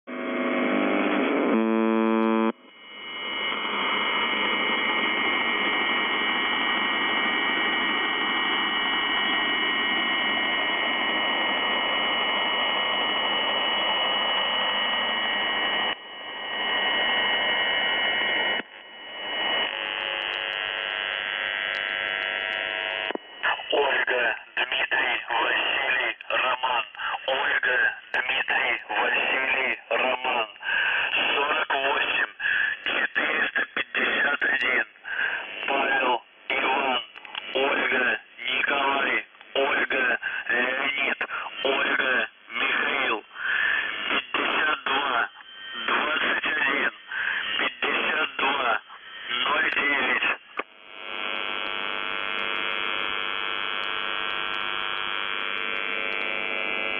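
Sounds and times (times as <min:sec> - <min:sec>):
radio buzz tone: 0:00.1 - 0:56.9
radio static hiss: 0:00.1 - 0:56.9
voice reading over radio: 0:23.4 - 0:50.7.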